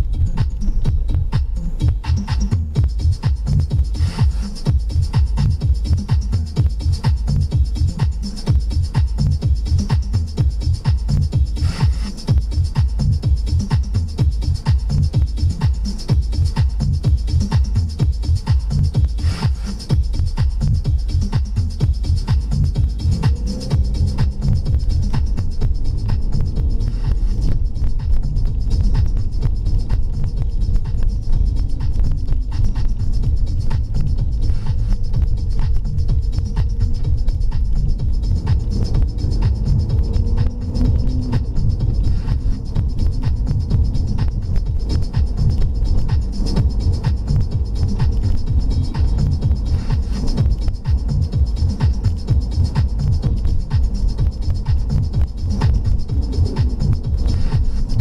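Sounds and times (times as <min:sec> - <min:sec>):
car engine: 0:00.0 - 0:58.0
dance music on car radio: 0:00.0 - 0:58.0
road noise: 0:00.0 - 0:58.0.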